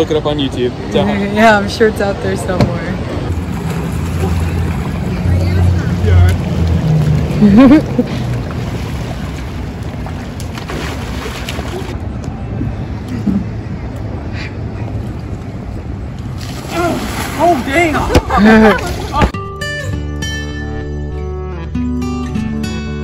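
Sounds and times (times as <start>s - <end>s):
water splashing: 3.3s - 12.0s, 16.2s - 19.4s.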